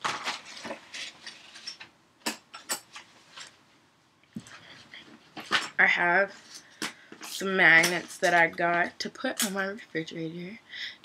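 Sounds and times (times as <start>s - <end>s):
woman's voice: 5.8s - 6.4s, 7.3s - 10.7s.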